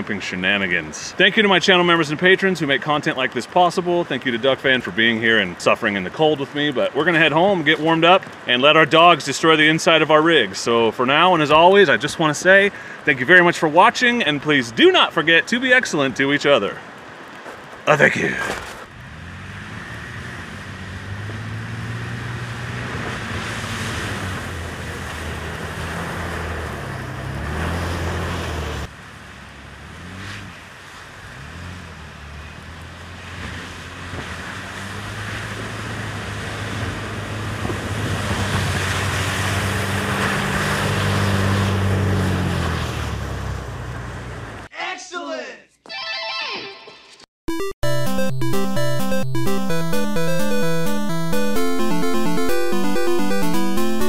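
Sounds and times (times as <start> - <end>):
car engines accelerating: 19.0 - 44.6.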